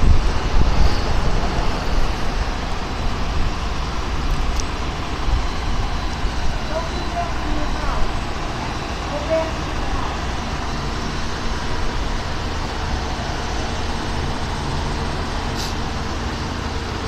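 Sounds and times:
idling vehicles rumble: 0.0 - 17.0.

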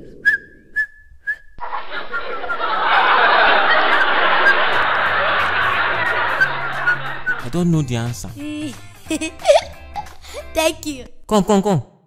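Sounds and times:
high whistle: 3.9 - 5.0, 5.6 - 7.7.

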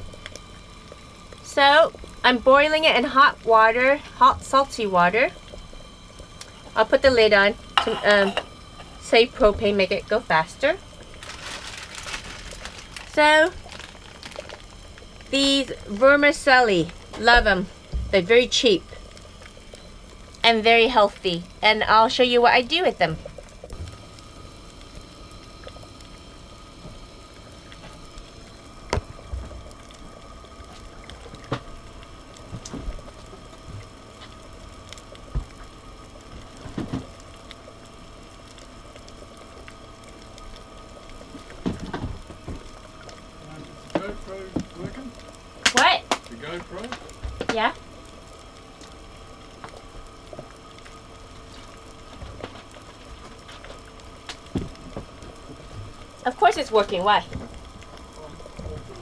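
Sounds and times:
stove humming: 0.0 - 59.0.

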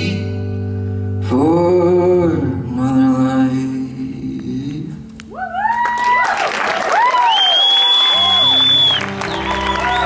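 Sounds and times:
crowd cheering: 5.4 - 10.0
audience applauding: 5.6 - 10.0
long high whistle: 7.1 - 10.0.

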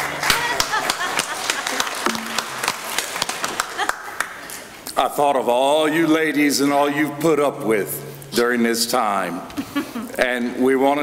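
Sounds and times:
congregation applauding: 0.0 - 4.6.

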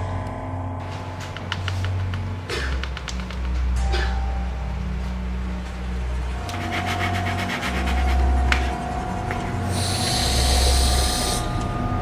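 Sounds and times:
low steady drone: 3.7 - 12.0.

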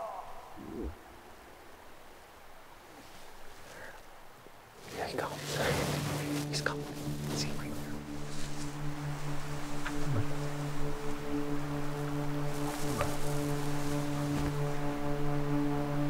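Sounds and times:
low droning music: 4.6 - 16.0.

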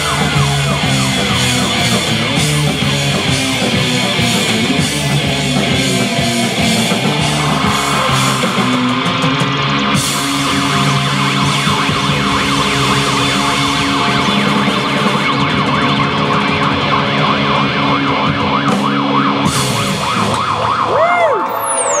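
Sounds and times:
slow sliding guitar tones: 0.0 - 18.5
electric guitars sustained chord: 0.0 - 20.6
wailing siren-like guitar tone: 0.0 - 22.0.

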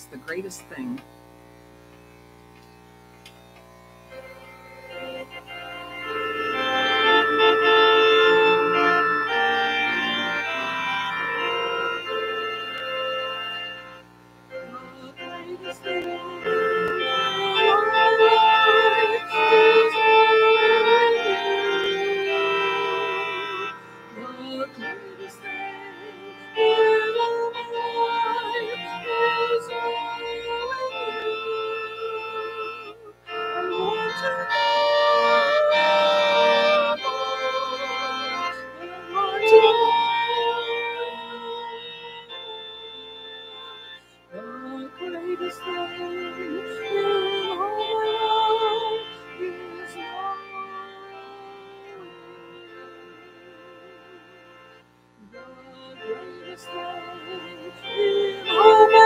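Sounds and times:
organ playing a slow hymn: 0.2 - 59.0.

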